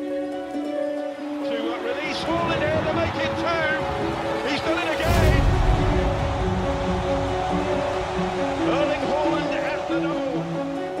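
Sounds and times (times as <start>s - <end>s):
background music: 0.0s - 11.0s
stadium crowd cheering: 1.1s - 11.0s.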